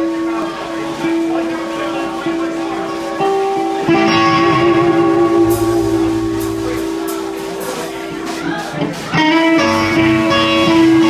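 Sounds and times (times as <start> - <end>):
electric guitar playing slow blues: 0.0 - 11.0.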